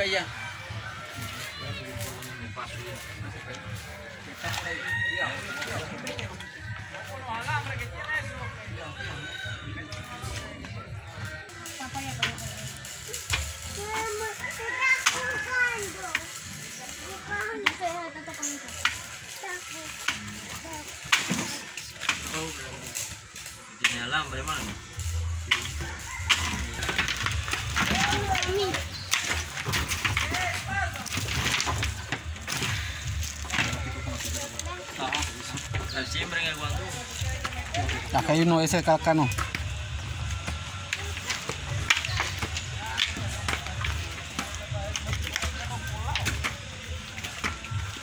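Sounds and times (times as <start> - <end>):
voices talking: 0.0 - 48.0
rooster crowing: 4.5 - 7.2, 9.0 - 10.0, 14.4 - 15.7, 25.6 - 28.0.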